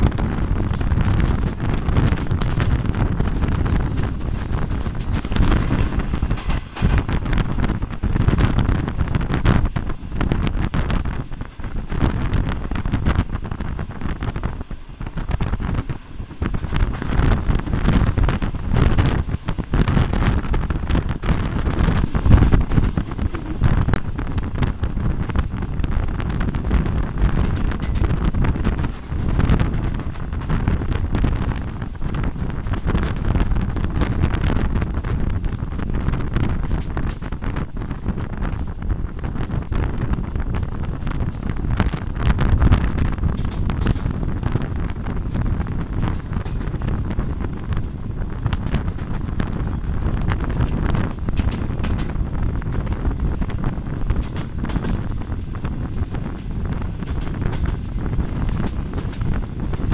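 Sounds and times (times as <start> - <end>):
train running noise: 0.0 - 59.9
wind buffeting microphone: 0.0 - 59.9.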